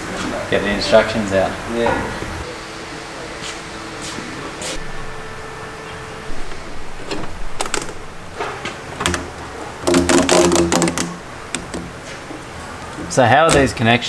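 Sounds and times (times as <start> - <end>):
parts clicking and rattling: 7.0 - 13.8.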